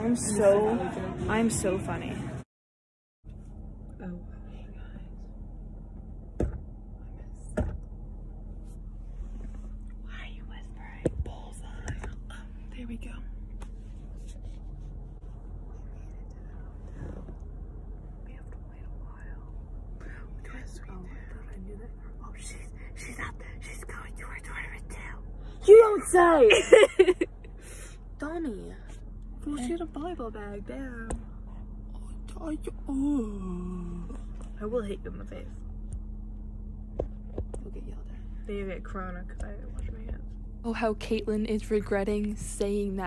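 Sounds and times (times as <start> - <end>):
car interior hum: 3.3 - 43.0
whispering: 10.1 - 13.2, 15.7 - 16.8, 18.2 - 25.2.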